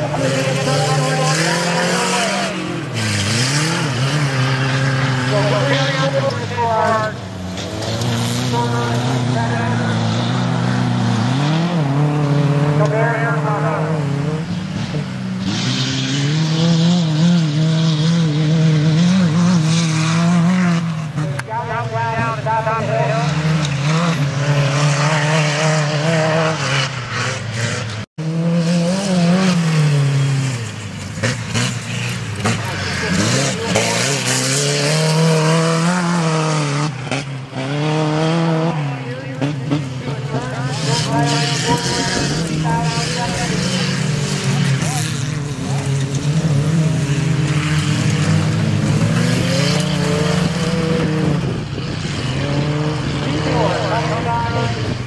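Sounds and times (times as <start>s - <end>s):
race truck engines revving: 0.0s - 55.0s.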